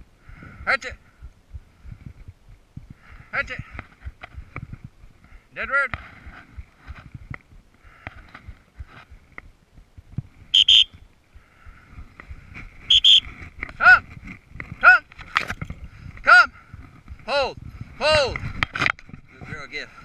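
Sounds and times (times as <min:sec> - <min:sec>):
shrill whistle blasts: 0:10.5 - 0:11.0, 0:12.9 - 0:13.3
person shouting commands: 0:13.8 - 0:14.0, 0:14.8 - 0:15.1, 0:16.2 - 0:16.6.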